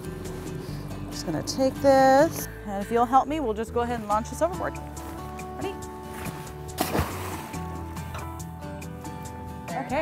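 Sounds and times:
background music held tones: 0.0 - 10.0
crab pot splashing into water: 6.7 - 7.7.

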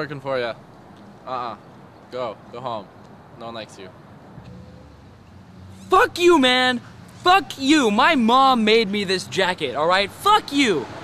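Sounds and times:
man shouting: 5.8 - 10.8.

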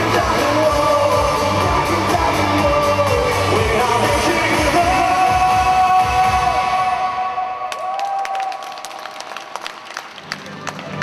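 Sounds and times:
low music: 0.0 - 7.5
hand clapping in a hall: 7.6 - 11.0.

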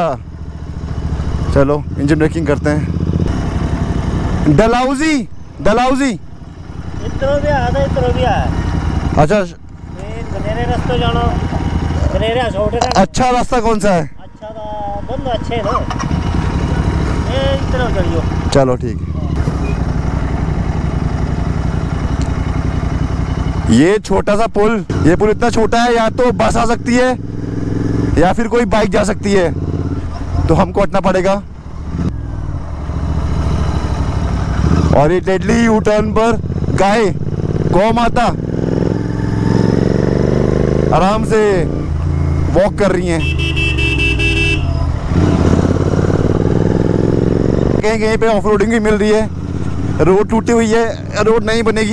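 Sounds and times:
motorcycle engine running: 0.0 - 51.9
vehicle horn: 43.0 - 45.0.

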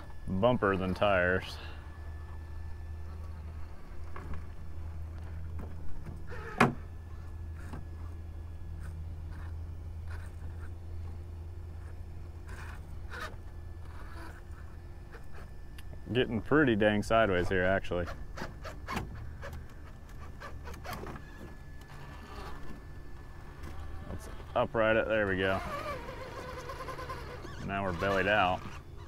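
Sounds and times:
toy car motor buzzing: 3.0 - 5.5, 6.2 - 15.6, 17.3 - 22.8, 23.5 - 29.0.

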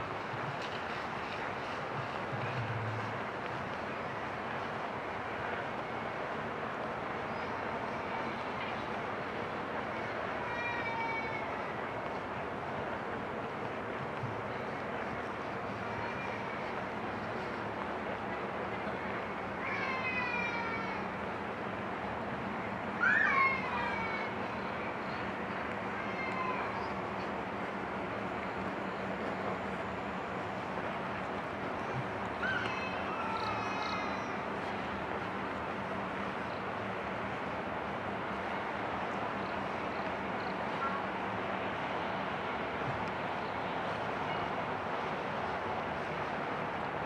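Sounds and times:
outdoor background noise: 0.0 - 47.0.

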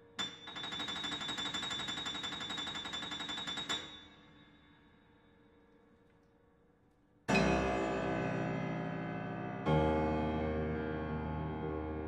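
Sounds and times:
grand piano tremolo: 7.3 - 12.0.

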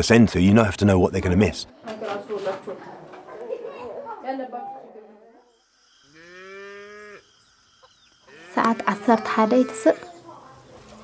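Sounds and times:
cow mooing: 6.1 - 7.3, 8.2 - 10.1.

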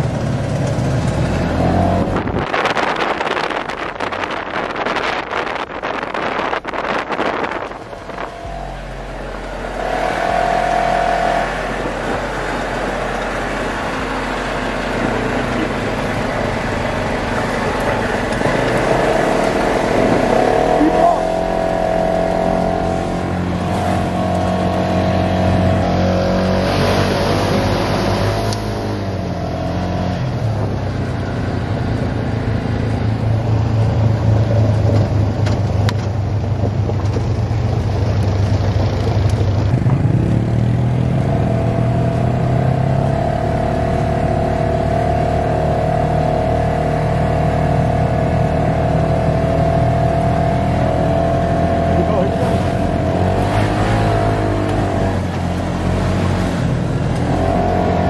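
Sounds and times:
vehicle engine running: 0.0 - 58.0.

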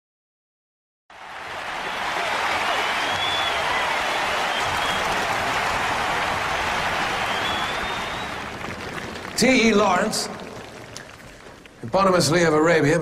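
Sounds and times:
audience applauding: 1.1 - 12.5
faint whistles: 2.6 - 5.2, 7.0 - 8.5.

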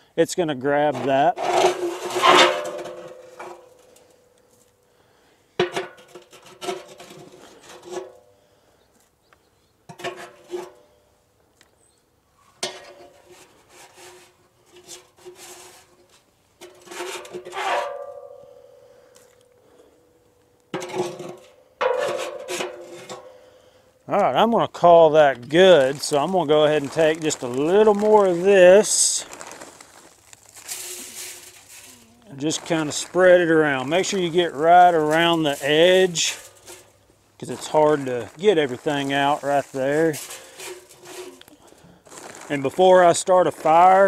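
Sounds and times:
steel fire pit ringing: 0.4 - 8.4, 14.7 - 42.9
metal scoop scraping steel floor: 0.8 - 4.1, 5.6 - 8.2, 9.9 - 10.9, 12.6 - 18.8, 20.7 - 23.4, 30.6 - 36.9, 37.5 - 41.5.

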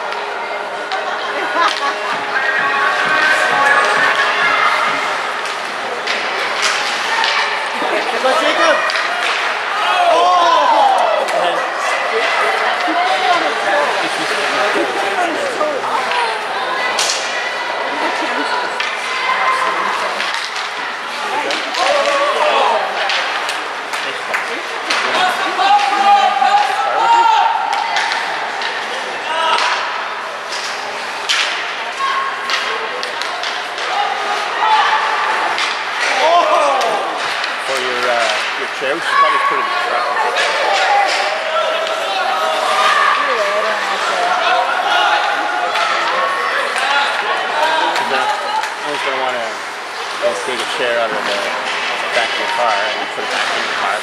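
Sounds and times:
spectators talking and calling out: 0.0 - 54.0
sticks and pucks knocking: 20.2 - 20.8, 36.8 - 38.7.

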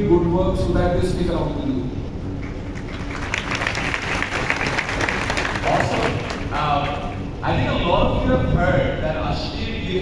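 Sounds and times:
large audience applauding: 2.7 - 7.0.

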